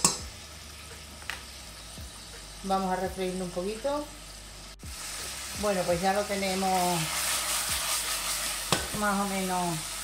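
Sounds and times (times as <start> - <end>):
meat and garlic sizzling in oil: 0.0 - 10.0.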